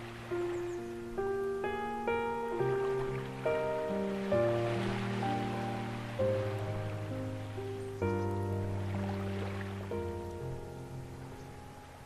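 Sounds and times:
ocean waves: 0.0 - 12.0
soft piano chords: 0.0 - 12.0.

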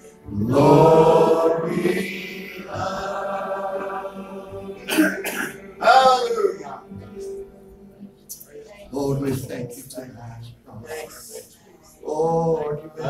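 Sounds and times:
person wordless vocal sound: 4.8 - 7.3
person clearing throat: 4.9 - 5.7.

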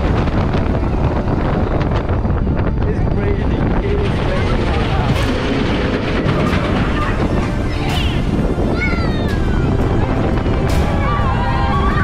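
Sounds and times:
roller coaster rumble: 0.0 - 12.0
wind buffeting microphone: 0.0 - 12.0.

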